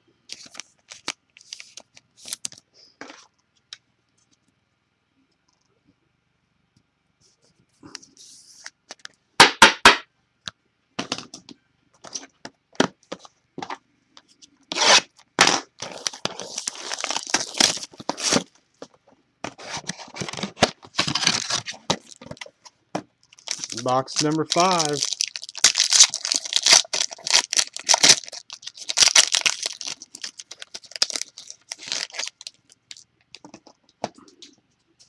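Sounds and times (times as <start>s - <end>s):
cardboard tearing and foil crinkling: 14.7s - 18.5s, 19.5s - 22.5s, 23.3s - 33.0s.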